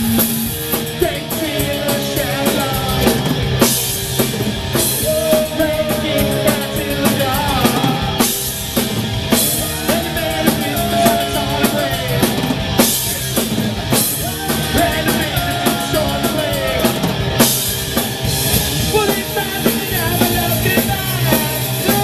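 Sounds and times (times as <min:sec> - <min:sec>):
rock band playing: 0:00.0 - 0:22.0.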